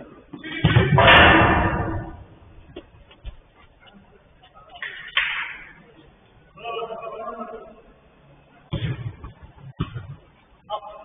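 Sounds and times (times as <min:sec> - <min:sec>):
sharp bang: 0:00.6 - 0:02.3.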